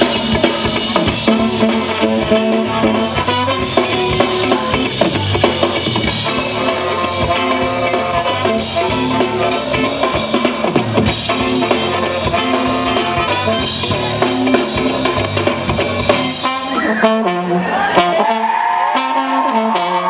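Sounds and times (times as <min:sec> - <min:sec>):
live funk band playing: 0:00.0 - 0:20.0.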